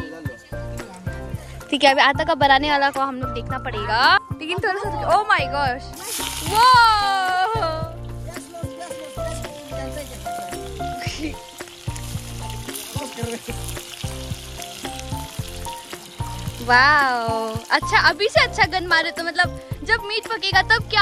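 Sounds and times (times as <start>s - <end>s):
background music: 0.0s - 21.0s
food sizzling in a wok: 5.8s - 21.0s
person exclaiming: 6.5s - 7.9s.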